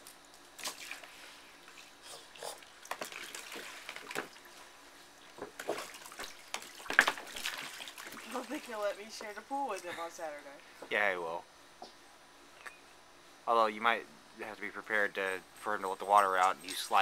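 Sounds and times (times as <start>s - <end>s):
water splashing in a plastic pool: 0.0s - 9.3s.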